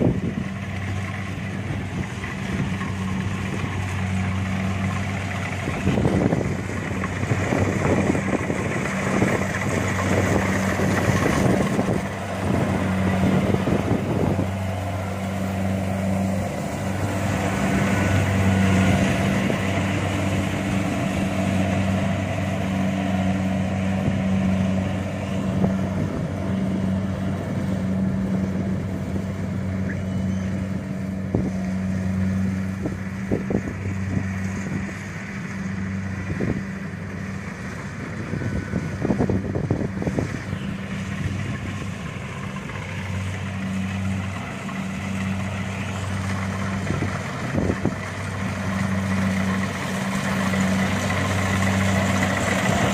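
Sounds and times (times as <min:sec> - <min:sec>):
combine harvester engine humming: 0:00.0 - 0:52.9.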